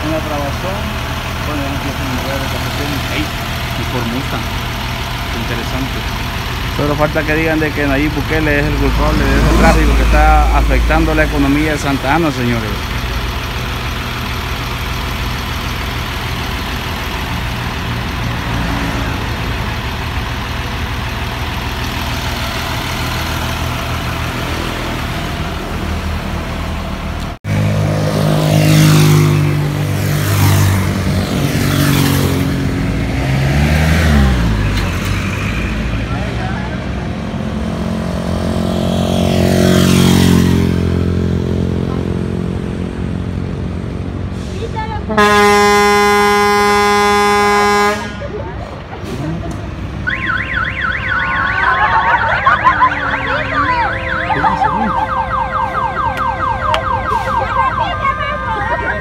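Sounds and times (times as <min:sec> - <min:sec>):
close engine running: 0:00.0 - 0:27.4
vehicle engines idling: 0:00.0 - 0:27.6, 0:28.2 - 0:38.6, 0:39.2 - 0:59.0
vehicles passing: 0:00.0 - 0:59.0.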